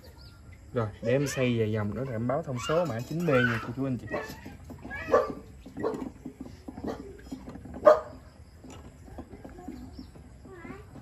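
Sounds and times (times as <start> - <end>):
dog barking: 5.0 - 6.1, 7.8 - 8.2.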